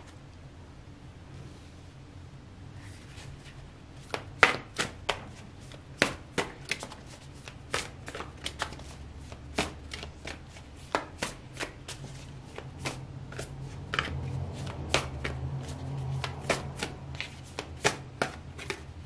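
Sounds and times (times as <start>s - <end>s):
cards being shuffled: 2.9s - 18.9s.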